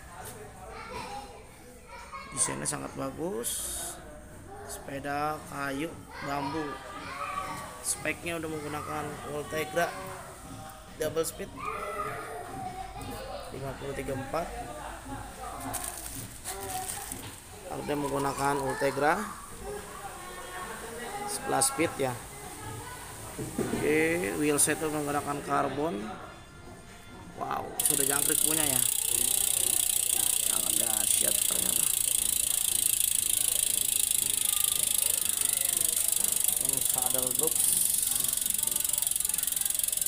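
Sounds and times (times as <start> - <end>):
bicycle freehub ratchet buzzing: 27.8 - 40.0
indistinct voices talking: 27.8 - 40.0.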